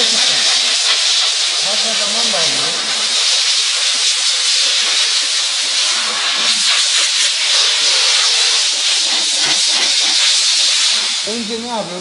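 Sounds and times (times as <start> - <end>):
steam nozzle hissing: 0.0 - 12.0.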